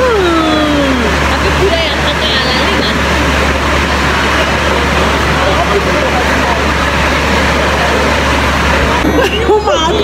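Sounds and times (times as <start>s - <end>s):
steady low rumble: 0.0s - 9.6s
voices talking and laughing: 0.0s - 10.0s.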